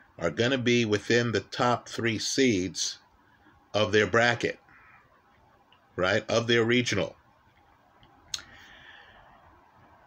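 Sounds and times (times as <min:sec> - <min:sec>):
faint soft hiss: 0:00.0 - 0:10.0.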